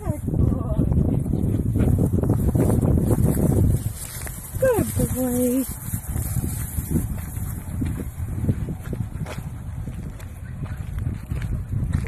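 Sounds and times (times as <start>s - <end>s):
wind buffeting microphone: 0.0s - 12.0s
rustling in dry grass: 1.8s - 8.7s.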